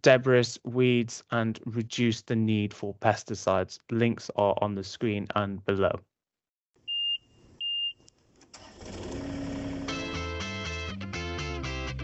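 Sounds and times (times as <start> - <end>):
outro music: 9.8 - 12.0.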